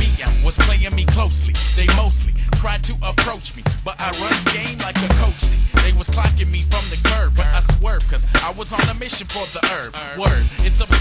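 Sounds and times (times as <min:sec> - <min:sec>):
deep bass line: 0:00.0 - 0:09.1, 0:10.3 - 0:11.0
rapping over a beat: 0:00.0 - 0:11.0
steady drum beat: 0:00.0 - 0:11.0.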